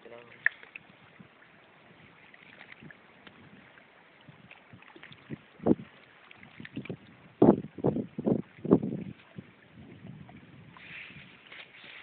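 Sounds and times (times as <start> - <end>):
water lapping: 0.0 - 12.0
wind on microphone: 0.2 - 12.0.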